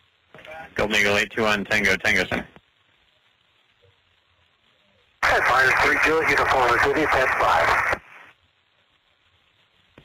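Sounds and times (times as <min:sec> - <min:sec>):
faint radio hiss: 0:00.0 - 0:10.0.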